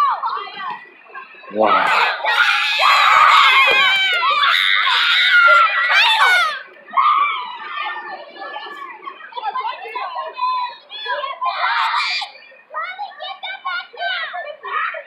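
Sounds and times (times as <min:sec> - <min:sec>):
children chattering: 0:00.0 - 0:15.0
children shouting and screaming: 0:00.0 - 0:15.0.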